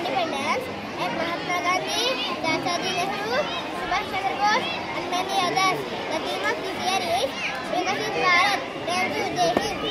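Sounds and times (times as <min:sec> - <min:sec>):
young boy speaking: 0:00.0 - 0:09.9.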